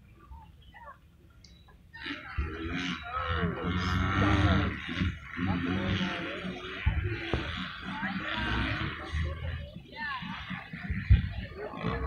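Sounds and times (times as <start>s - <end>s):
racing motorcycles revving: 2.0s - 12.0s.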